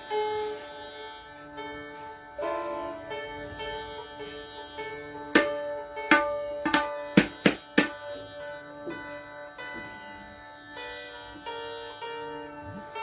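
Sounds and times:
sarangi strings ringing: 0:00.0 - 0:13.0
tabla strokes: 0:00.0 - 0:13.0.

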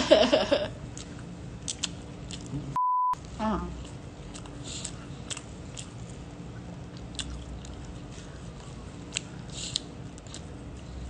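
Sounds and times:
steady low hum: 0:00.0 - 0:11.0
close-up chewing: 0:00.9 - 0:02.6, 0:03.8 - 0:11.0.

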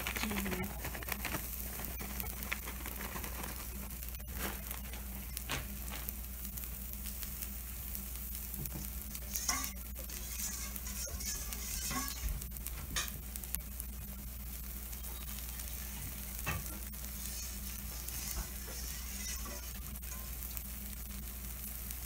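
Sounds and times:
batter sizzling on hot plate: 0:00.0 - 0:22.0.

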